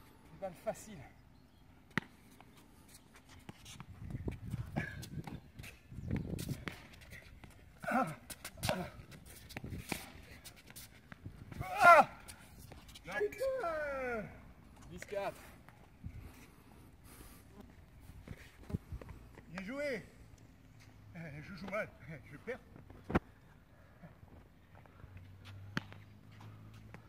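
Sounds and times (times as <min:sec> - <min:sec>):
person shouting: 0:07.8 - 0:09.0, 0:11.6 - 0:12.3, 0:13.2 - 0:14.3.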